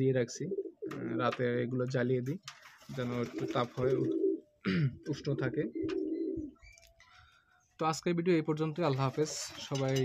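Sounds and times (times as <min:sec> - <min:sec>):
pigeons cooing: 0:00.5 - 0:01.2, 0:03.1 - 0:06.7.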